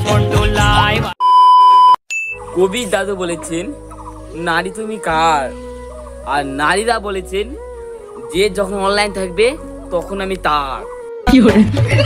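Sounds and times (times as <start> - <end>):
beep sound effect: 1.2 - 2.5.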